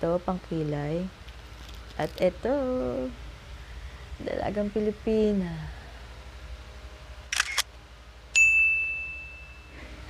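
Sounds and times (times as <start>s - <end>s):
camera shutter clicking: 7.3s - 7.7s
high clear ding: 8.4s - 9.9s.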